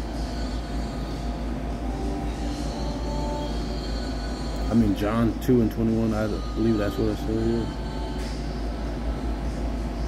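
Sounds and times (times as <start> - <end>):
faint hum tones: 0.0 - 10.0.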